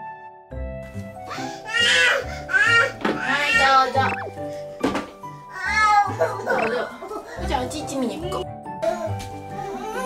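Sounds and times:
background music: 0:00.0 - 0:10.0
toddler whining: 0:05.5 - 0:07.4, 0:08.8 - 0:10.0.

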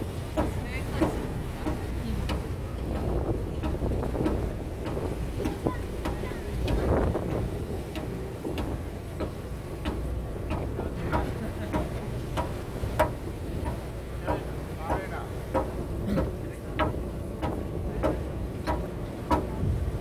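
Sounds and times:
boat engine low rumble: 0:00.0 - 0:20.0
wind buffeting microphone: 0:00.0 - 0:20.0
sharp knocks: 0:00.3 - 0:19.6.

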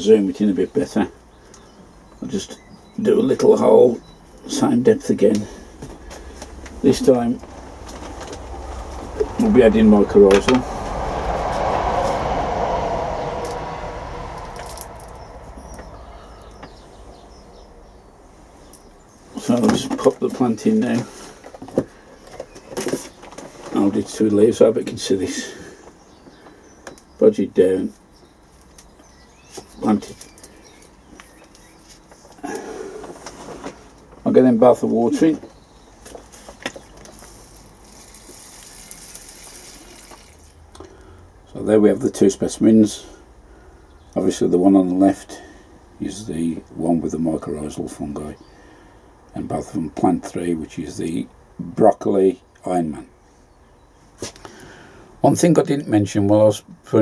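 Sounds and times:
passing vehicle rumble: 0:05.4 - 0:19.6, 0:34.6 - 0:48.4
water spray hissing: 0:37.5 - 0:40.5.

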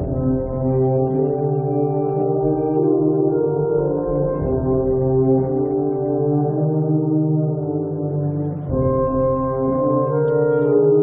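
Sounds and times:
brass band playing slow chords: 0:00.0 - 0:11.0.

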